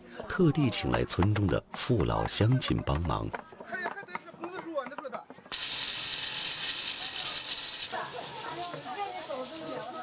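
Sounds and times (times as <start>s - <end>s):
coal fire crackling: 5.5s - 10.0s.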